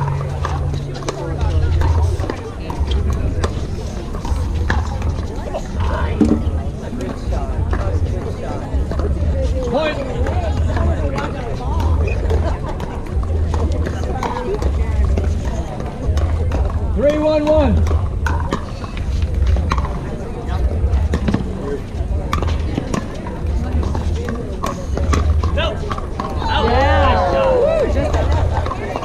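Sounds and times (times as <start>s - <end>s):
voices: 0.0s - 29.0s.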